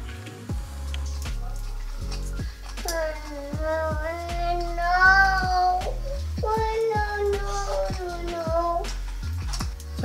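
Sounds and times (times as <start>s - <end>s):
child singing held notes: 2.8s - 9.0s.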